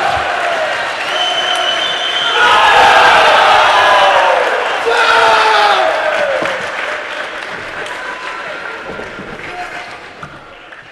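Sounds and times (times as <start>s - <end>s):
spectators applauding: 0.0s - 10.9s.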